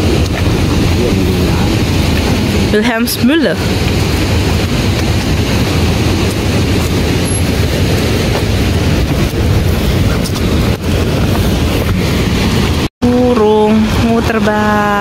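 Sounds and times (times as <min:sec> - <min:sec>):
wind buffeting microphone: 0:00.0 - 0:12.9.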